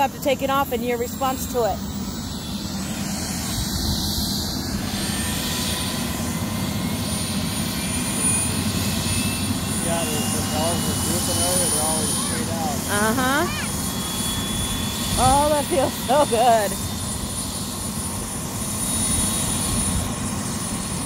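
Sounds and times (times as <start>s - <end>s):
helicopter running: 0.0s - 21.0s.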